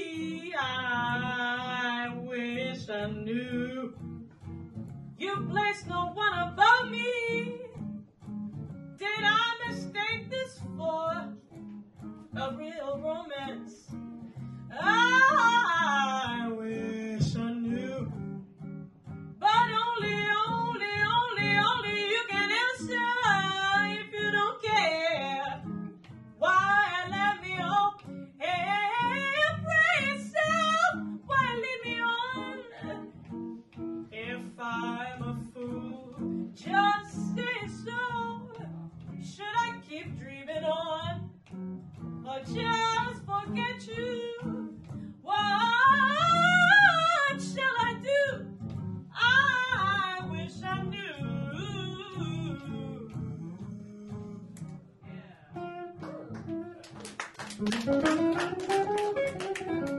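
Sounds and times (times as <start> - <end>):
jazz guitar plucking: 0.0 - 59.9
woman scat singing: 14.7 - 18.0, 26.4 - 41.4, 42.3 - 56.7.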